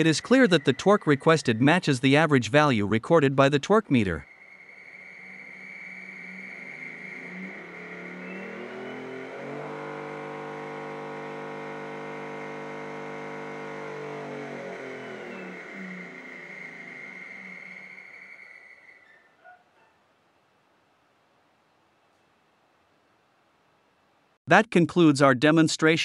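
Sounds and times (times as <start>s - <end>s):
steady high-pitched tone: 0.0s - 2.1s, 3.9s - 19.0s
servo motors whining: 5.2s - 18.2s.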